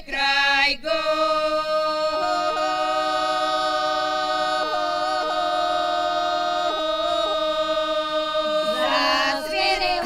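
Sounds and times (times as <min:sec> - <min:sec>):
women singing folk drone a cappella: 0:00.0 - 0:10.0.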